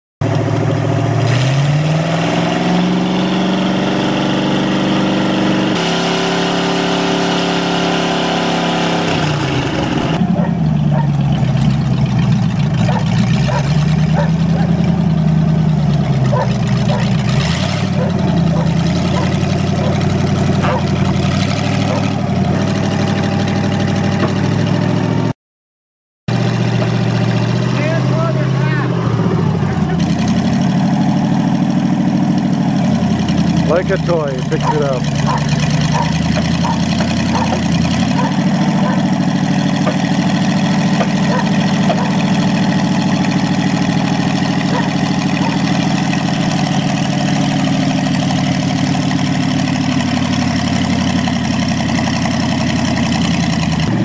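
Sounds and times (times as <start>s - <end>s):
engines revving: 0.2s - 25.3s, 26.3s - 54.0s.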